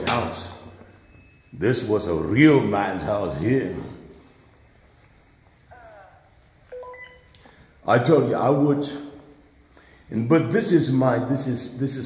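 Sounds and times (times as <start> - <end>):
faint gliding chirp: 0.4 - 1.9
steady beep: 6.7 - 7.3.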